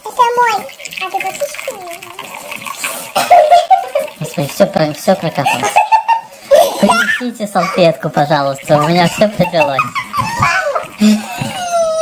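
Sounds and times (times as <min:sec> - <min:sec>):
tea pouring into glass cup: 0:00.0 - 0:06.2, 0:07.6 - 0:11.7
high-pitched voice crying out: 0:11.5 - 0:12.0.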